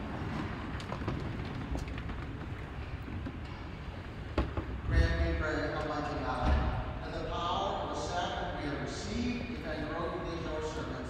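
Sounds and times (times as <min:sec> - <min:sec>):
indistinct speech in echoing church: 0:04.9 - 0:11.0.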